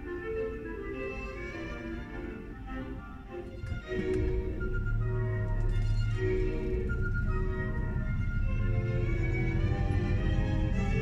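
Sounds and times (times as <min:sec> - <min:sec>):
orchestral strings on car radio: 0:00.0 - 0:11.0
car low rumble: 0:03.5 - 0:11.0.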